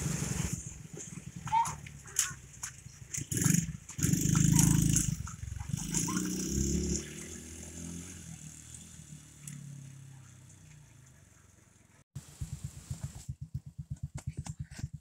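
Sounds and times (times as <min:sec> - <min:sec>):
atv engine running: 0:00.0 - 0:15.0.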